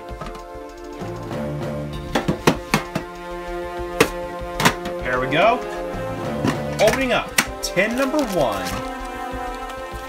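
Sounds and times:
background music: 0.0s - 10.0s
metal tins knocking: 2.0s - 3.2s.

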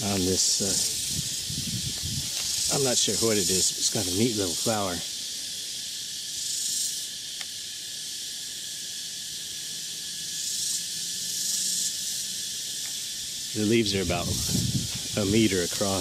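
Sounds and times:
insect chorus: 0.0s - 16.0s.

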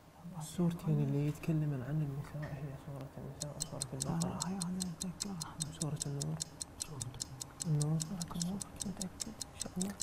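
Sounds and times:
clock ticking quickly: 3.4s - 10.0s.

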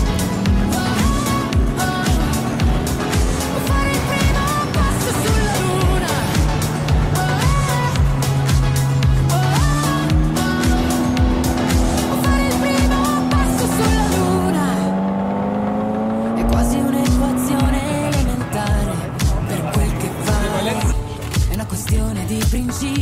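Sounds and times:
sports car engine pulling away: 0.0s - 21.4s
music with steady beat: 0.0s - 23.0s.

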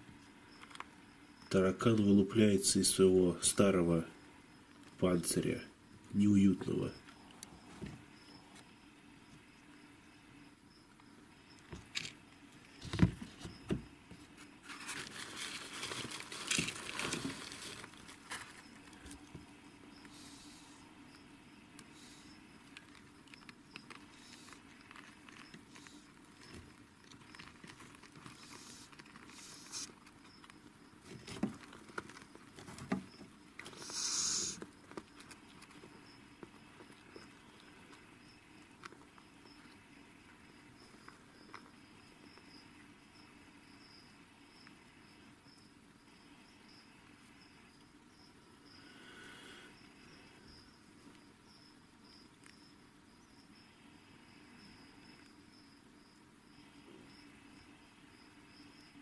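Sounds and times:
faint background noise: 0.0s - 59.0s
small clicks and rustles: 0.6s - 0.9s, 22.6s - 34.0s, 34.6s - 39.8s
short hiss-like burst: 33.7s - 34.6s.

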